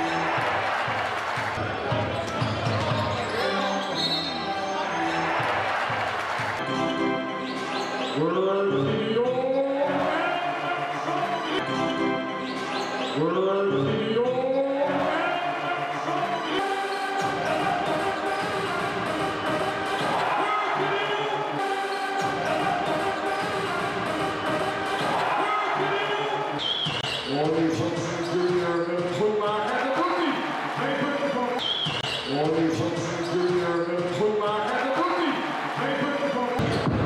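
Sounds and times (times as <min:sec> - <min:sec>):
music in a hall: 0:00.0 - 0:37.0
sneaker squeaks: 0:02.2 - 0:05.2, 0:07.4 - 0:08.2, 0:12.4 - 0:13.3, 0:26.6 - 0:27.4, 0:31.6 - 0:32.4, 0:33.0 - 0:34.2.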